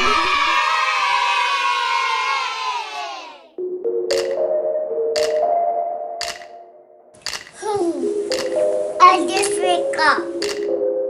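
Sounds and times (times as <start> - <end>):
children cheering sound effect: 0.0 - 3.5
soft music tone: 3.6 - 11.0.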